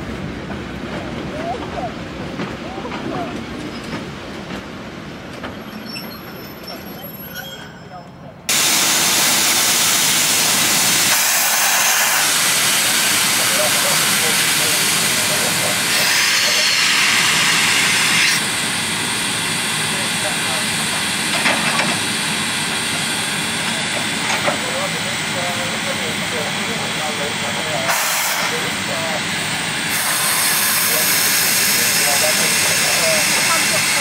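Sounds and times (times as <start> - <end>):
steam locomotive hissing: 8.5 - 34.0.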